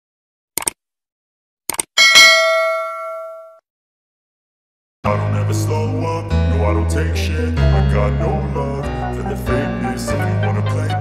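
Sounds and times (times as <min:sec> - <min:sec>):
quick double click: 0:00.6 - 0:00.8
notification bell chime: 0:02.0 - 0:03.6.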